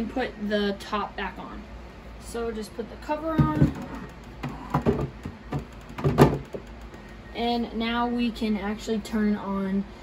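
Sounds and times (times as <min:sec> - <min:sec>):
plastic cover knocking and scraping: 0:03.3 - 0:07.2.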